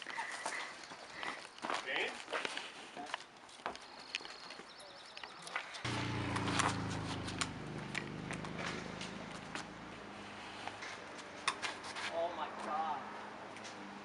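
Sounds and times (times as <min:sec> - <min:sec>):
low motor hum: 0:05.9 - 0:10.4.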